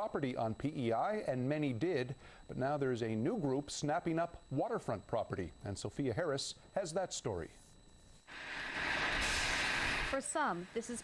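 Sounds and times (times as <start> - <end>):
construction machinery hissing: 8.3 - 11.0.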